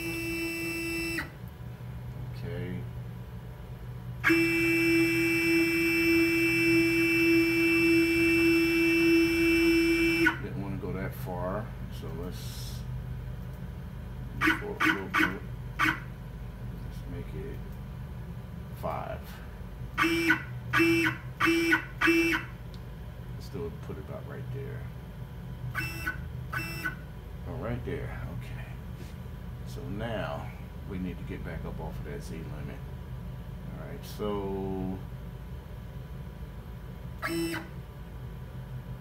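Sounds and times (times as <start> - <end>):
stepper motor whining buzz: 0.0 - 1.4, 4.2 - 10.6, 19.9 - 22.6, 25.7 - 27.1, 37.2 - 37.8.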